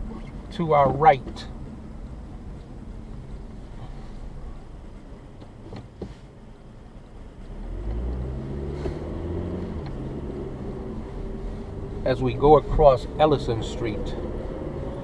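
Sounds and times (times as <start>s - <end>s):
car engine and road rumble: 0.0s - 15.0s
low engine hum: 0.0s - 15.0s.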